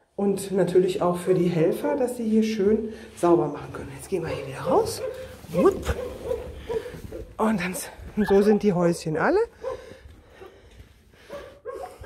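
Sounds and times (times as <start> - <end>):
dog barks and whines: 4.2 - 7.4, 11.3 - 12.0.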